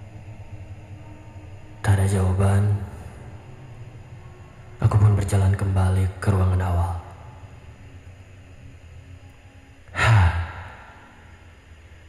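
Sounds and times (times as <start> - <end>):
faint background hum: 0.0 - 12.0
man sighing: 9.9 - 11.2.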